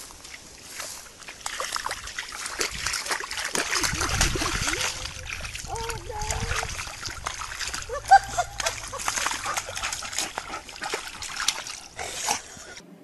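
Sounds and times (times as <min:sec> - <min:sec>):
water splashing and sloshing: 0:00.0 - 0:12.8
person calling out: 0:05.6 - 0:06.6.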